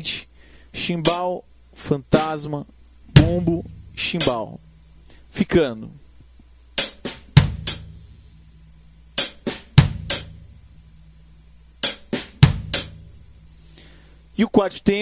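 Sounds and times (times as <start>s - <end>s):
hi-hat: 0.0s - 5.4s, 6.8s - 14.4s
bass drum: 3.1s - 4.8s, 6.9s - 8.2s, 9.2s - 11.2s, 12.0s - 13.5s
soft snare ghost note: 3.2s - 4.7s.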